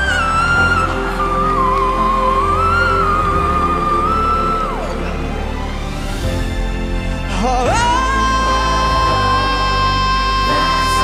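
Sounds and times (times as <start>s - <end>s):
backing music: 0.0s - 11.0s
man singing high sustained note: 7.2s - 11.0s.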